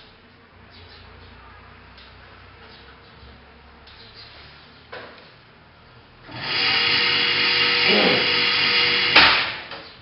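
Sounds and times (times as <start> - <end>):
electric motor whirring: 6.3 - 9.6.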